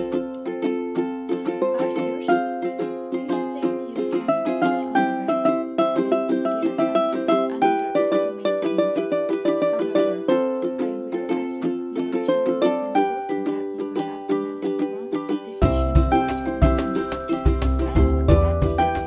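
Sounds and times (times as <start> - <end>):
plucked string tune: 0.0 - 19.0
strummed accompaniment: 0.0 - 19.0.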